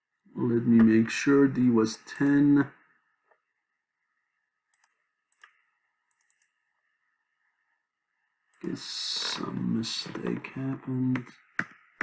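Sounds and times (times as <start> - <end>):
computer mouse clicks: 4.7 - 6.6.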